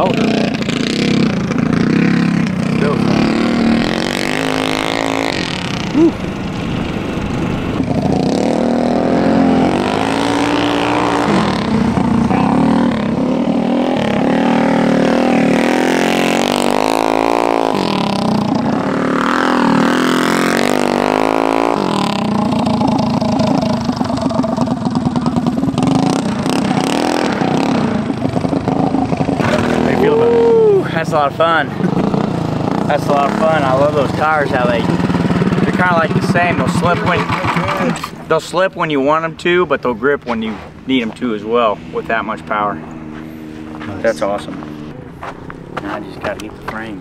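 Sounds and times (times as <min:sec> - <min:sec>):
minibike engine revving: 0:00.0 - 0:45.0.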